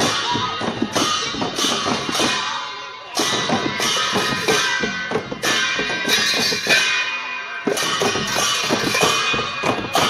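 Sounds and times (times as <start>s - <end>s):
drum beats: 0.0s - 10.0s
metal cymbals clashing: 0.9s - 10.0s.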